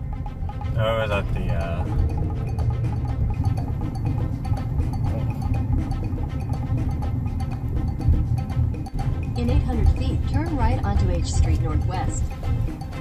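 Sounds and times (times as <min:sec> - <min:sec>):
music with heavy bass beat: 0:00.0 - 0:13.0.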